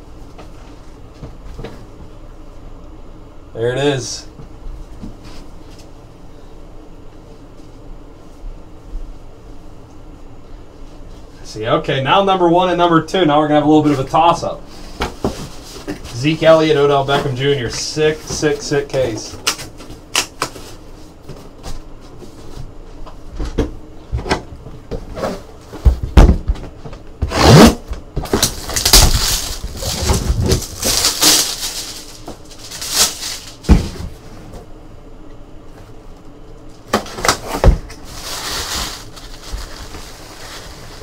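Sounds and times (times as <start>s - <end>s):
plastic wrap crinkling: 28.2s - 33.7s, 37.3s - 41.0s
paper rustling: 28.3s - 33.8s, 37.3s - 41.0s.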